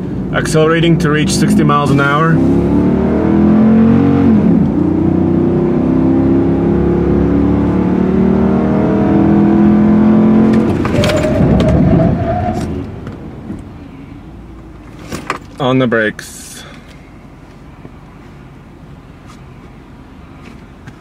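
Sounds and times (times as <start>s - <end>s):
truck engine accelerating: 0.0s - 13.8s.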